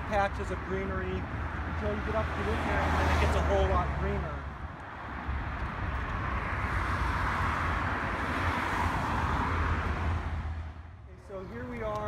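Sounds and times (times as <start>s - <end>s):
car passing: 0.0s - 12.0s
low traffic rumble: 0.0s - 12.0s.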